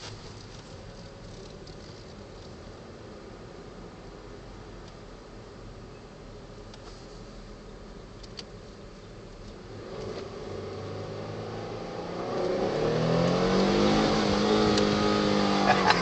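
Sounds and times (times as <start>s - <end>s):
car engine accelerating: 9.5s - 16.0s.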